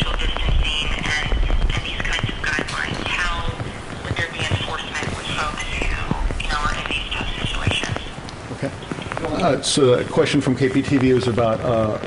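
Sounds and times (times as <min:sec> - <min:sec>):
muffled speech on telephone line: 0:00.0 - 0:12.0.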